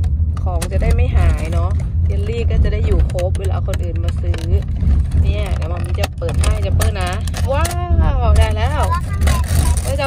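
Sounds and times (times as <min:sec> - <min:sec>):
road rumble inside car: 0:00.0 - 0:10.0
high-pitched voice speaking: 0:08.7 - 0:10.0.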